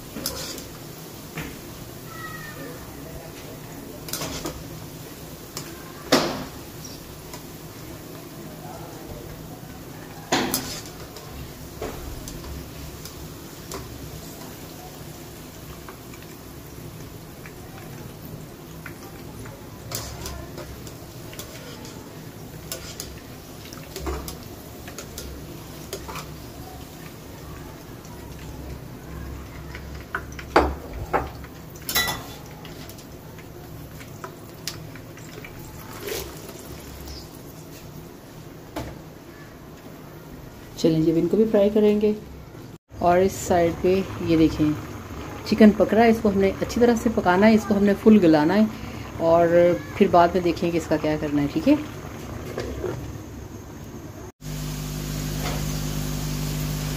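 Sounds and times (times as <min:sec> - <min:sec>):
oil sizzling: 0:00.0 - 0:56.9.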